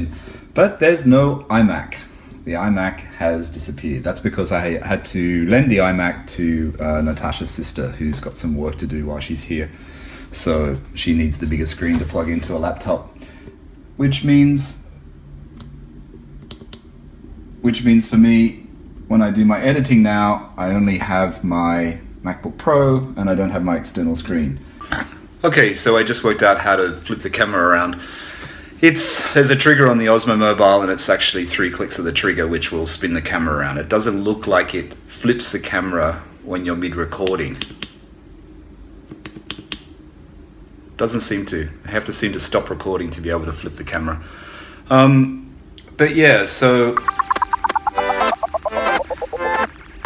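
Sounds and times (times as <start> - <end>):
low steady hum: 0.0 - 37.0.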